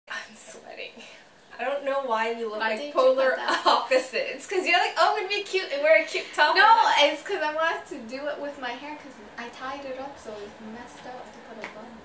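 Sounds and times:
woman speaking: 0.1s - 12.0s.

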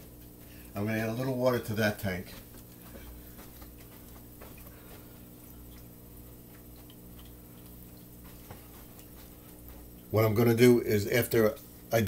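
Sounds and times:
low steady hum: 0.0s - 12.0s
faint ticks and clicks: 2.3s - 10.1s.

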